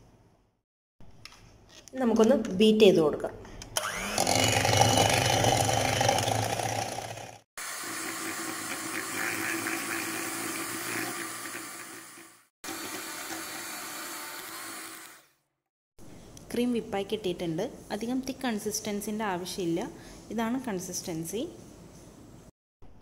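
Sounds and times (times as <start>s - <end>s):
electric hand mixer whipping cream: 3.8s - 15.3s.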